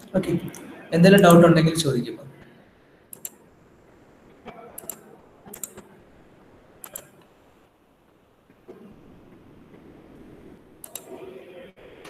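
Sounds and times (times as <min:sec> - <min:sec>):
computer keys clicking: 0:03.1 - 0:03.4, 0:04.8 - 0:05.8, 0:06.8 - 0:07.3, 0:10.8 - 0:11.1.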